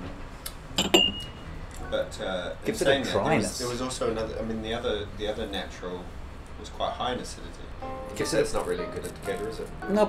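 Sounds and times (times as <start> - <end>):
spoon clinking against ceramic bowl: 0.8 - 1.3.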